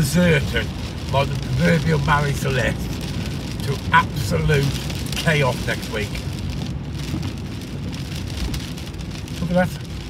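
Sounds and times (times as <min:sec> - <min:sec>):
car interior rumble: 0:00.0 - 0:10.0
rain on car windscreen: 0:00.0 - 0:10.0.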